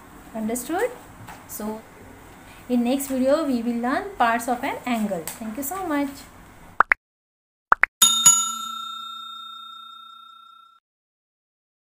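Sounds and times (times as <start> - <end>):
notification bell ding: 8.0 - 10.8.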